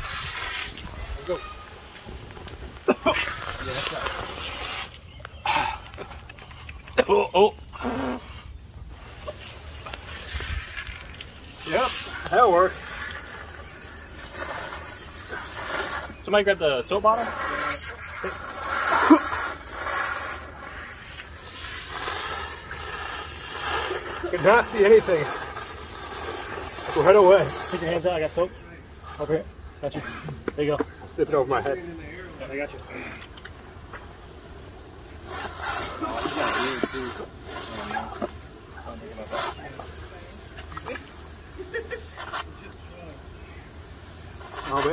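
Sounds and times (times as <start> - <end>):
hose water splashing: 0.0 - 44.9.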